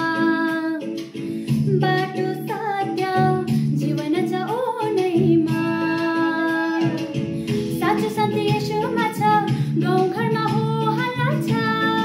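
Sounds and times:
guitar accompaniment: 0:00.0 - 0:12.0
woman singing: 0:00.0 - 0:12.0.

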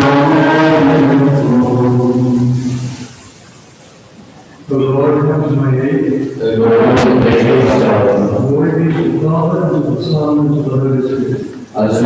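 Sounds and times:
man chanting liturgy: 0:00.0 - 0:03.0, 0:04.7 - 0:12.0.

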